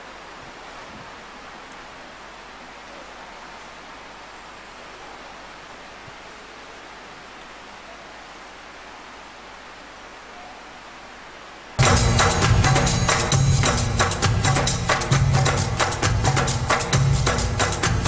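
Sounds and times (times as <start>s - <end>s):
low room hiss: 0.0s - 18.0s
music with percussion: 11.8s - 18.0s.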